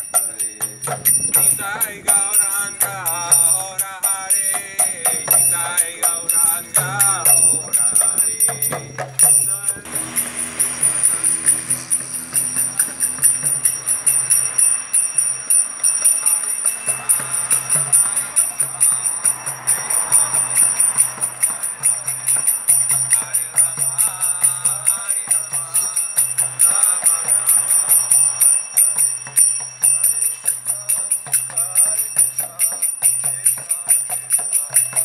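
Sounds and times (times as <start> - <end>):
man chanting: 0.0 - 13.8, 16.0 - 35.0
hand cymbals clashing: 0.0 - 35.0
hand drum beating: 4.1 - 14.7.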